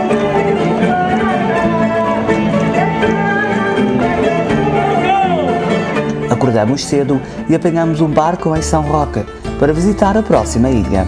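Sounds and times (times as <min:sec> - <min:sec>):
live folk music: 0:00.0 - 0:11.0.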